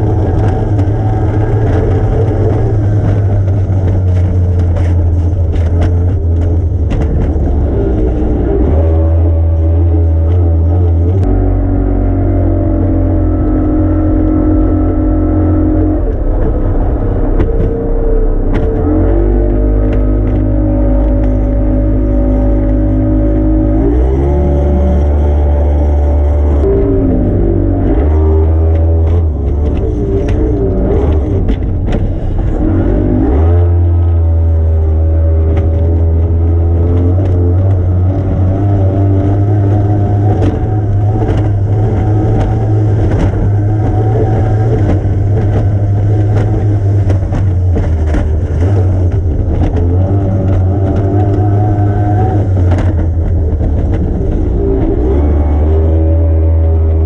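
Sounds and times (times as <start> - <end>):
powerboat engine running hard: 0.0 - 57.0
hull knocking on water: 39.1 - 55.2.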